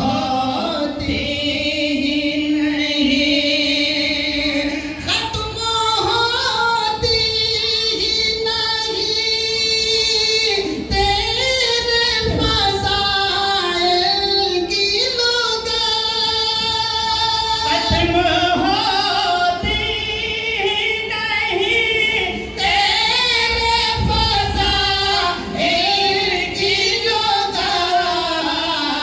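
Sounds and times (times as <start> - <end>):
man singing into a microphone: 0.0 - 29.0.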